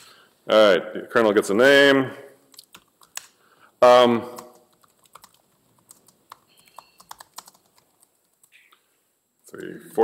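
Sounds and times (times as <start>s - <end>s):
faint keyboard typing: 2.5s - 3.4s, 4.3s - 8.8s.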